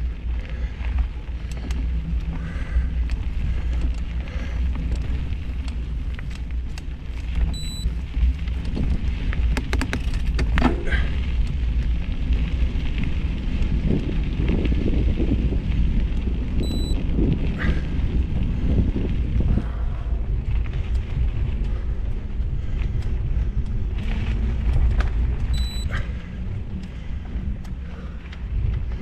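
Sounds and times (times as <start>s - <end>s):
rustling and crackling on ground: 0.0s - 29.0s
wind rumble on microphone: 0.0s - 29.0s
short high beeps: 7.6s - 7.9s, 16.6s - 17.0s, 25.6s - 25.9s.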